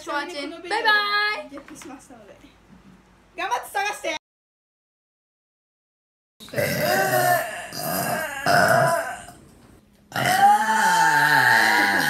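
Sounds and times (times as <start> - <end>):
woman burping: 6.5 - 9.4, 10.1 - 12.0.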